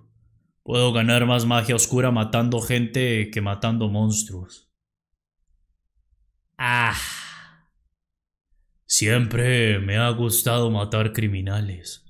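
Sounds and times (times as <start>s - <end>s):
person speaking: 6.6s - 7.6s
person sighing ah: 6.6s - 7.8s.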